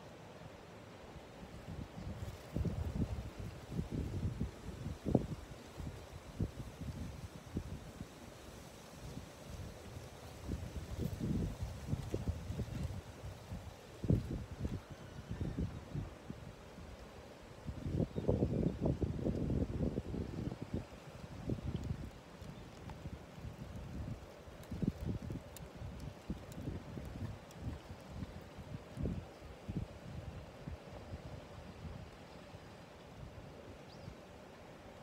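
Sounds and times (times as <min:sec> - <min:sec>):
wind buffeting microphone: 0:01.7 - 0:08.0, 0:10.4 - 0:16.4.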